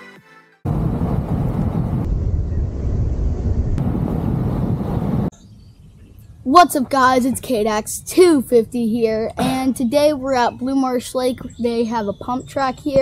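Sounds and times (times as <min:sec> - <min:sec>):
loud low rumbling noise: 0:00.7 - 0:05.3.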